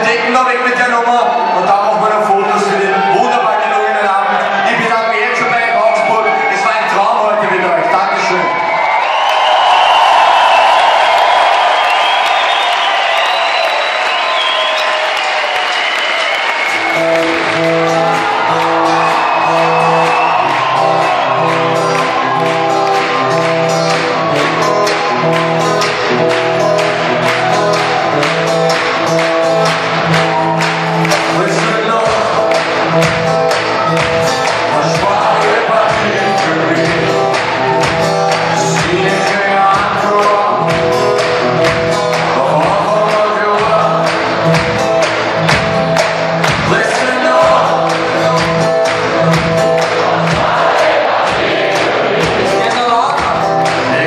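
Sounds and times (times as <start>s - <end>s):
crowd cheering and shouting: 0.0s - 54.0s
drums: 8.7s - 54.0s
live band chords and bass: 10.0s - 54.0s.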